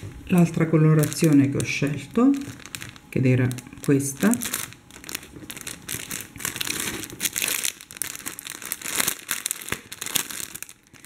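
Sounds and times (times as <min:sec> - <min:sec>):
plastic packet crinkling: 0:00.0 - 0:11.0.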